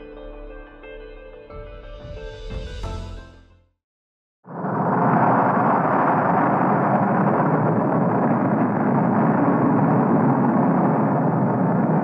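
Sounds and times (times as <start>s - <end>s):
muffled explosion rumble: 4.6s - 12.0s.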